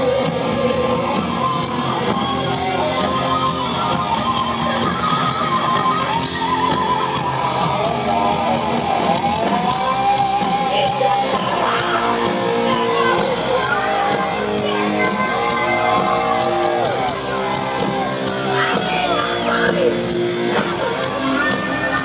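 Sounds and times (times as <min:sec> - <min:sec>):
electric guitar lead with bending notes: 0:00.0 - 0:22.0
heavy metal band playing live: 0:00.0 - 0:22.0.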